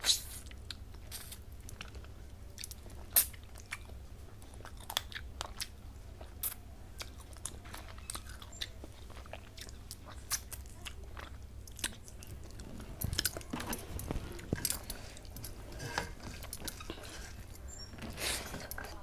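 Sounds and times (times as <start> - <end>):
chewing with mouth clicks: 0.0 - 19.0
steady low hum: 0.0 - 19.0.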